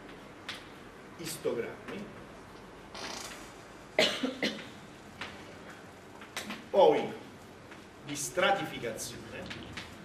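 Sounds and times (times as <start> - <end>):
man coughing: 4.0 - 4.6.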